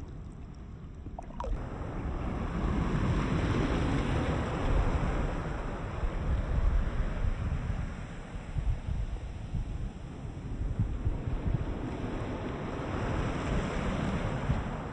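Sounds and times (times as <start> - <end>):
waves washing: 0.0 - 2.0.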